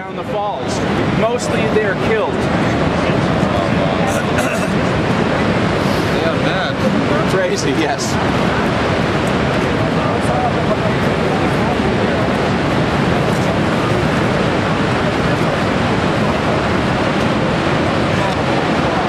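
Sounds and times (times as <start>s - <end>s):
waterfall rushing: 0.2s - 19.0s.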